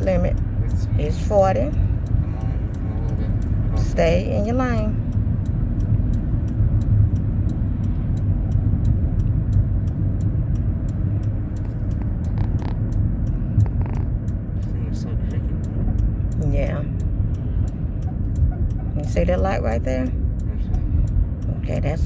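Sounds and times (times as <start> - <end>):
engine and tyres rumbling: 0.0 - 22.0
fast even ticking: 0.0 - 22.0.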